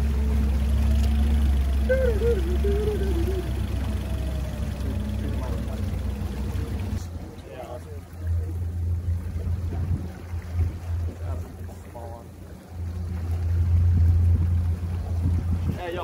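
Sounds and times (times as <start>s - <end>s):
boat outboard motor running: 0.0s - 16.0s
faint voices: 1.5s - 9.8s
wind on microphone: 9.2s - 11.7s, 13.1s - 16.0s.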